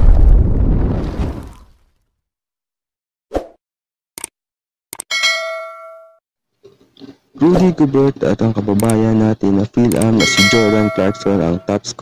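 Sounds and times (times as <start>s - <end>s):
bell ding: 5.1s - 6.2s, 10.2s - 11.7s.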